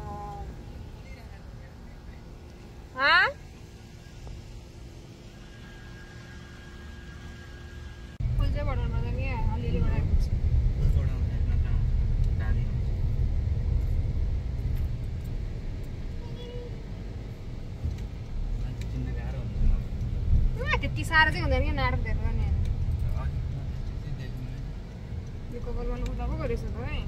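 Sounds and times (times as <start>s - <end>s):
car cabin road and engine rumble: 0.0s - 27.0s
faint hum: 0.0s - 27.0s.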